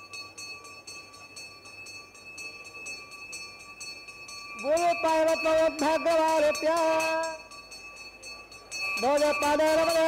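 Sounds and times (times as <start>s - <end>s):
faint steady high tones: 0.0s - 10.0s.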